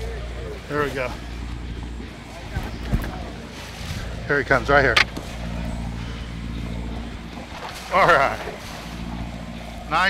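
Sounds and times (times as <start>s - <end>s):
boat engine droning: 0.0s - 10.0s.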